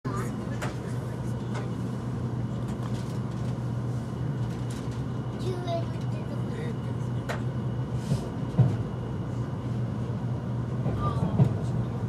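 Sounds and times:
train cabin hum: 0.1 - 12.0.

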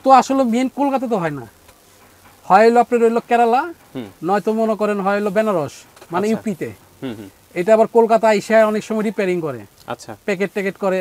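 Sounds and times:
man speaking: 2.5 - 11.0.

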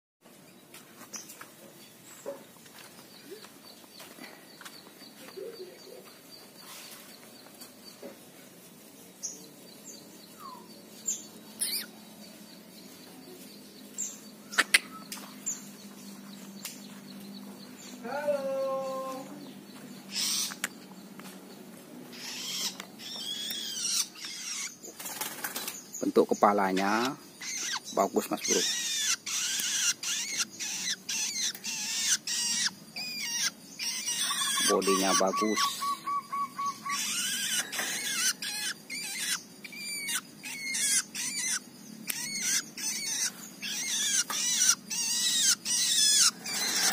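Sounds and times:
songbirds chirping: 0.2 - 46.9
bird harsh calls: 9.2 - 21.0, 22.0 - 46.9.

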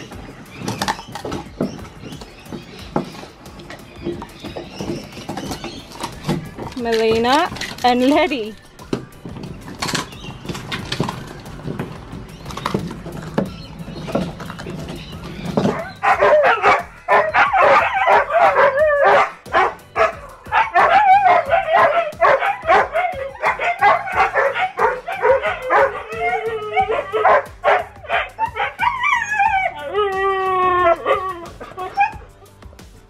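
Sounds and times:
dogs howling and yowling: 9.8 - 32.4.

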